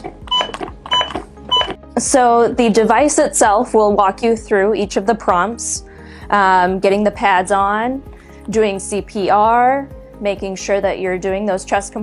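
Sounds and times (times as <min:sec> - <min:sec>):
metronome beeping: 0:00.3 - 0:01.8.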